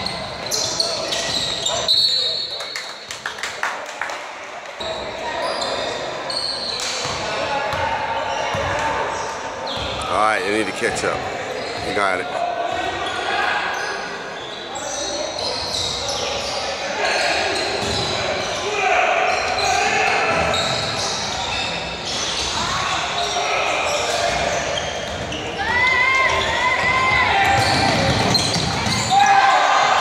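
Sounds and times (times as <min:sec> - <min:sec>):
shouting and chatter: 0:03.6 - 0:30.0
basketball bouncing on court: 0:07.0 - 0:07.8, 0:27.4 - 0:29.1.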